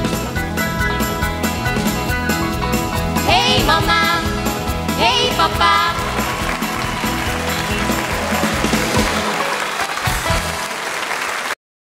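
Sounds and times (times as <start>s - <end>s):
band playing: 0.0s - 11.5s
audience applauding: 5.3s - 11.6s.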